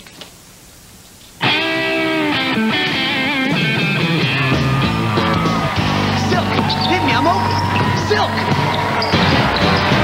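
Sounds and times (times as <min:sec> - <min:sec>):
rock music: 0:01.4 - 0:10.0.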